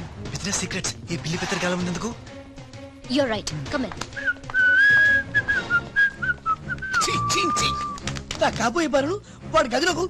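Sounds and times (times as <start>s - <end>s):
whistled tune: 4.1s - 8.2s.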